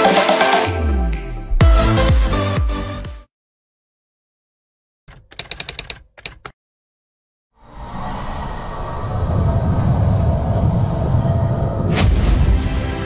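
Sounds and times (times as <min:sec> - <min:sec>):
sharp clicks: 0:05.1 - 0:06.6
deep rumble: 0:07.7 - 0:12.6.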